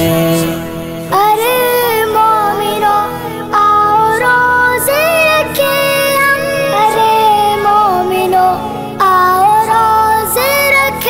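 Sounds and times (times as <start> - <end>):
boy singing long notes: 1.1 - 11.0.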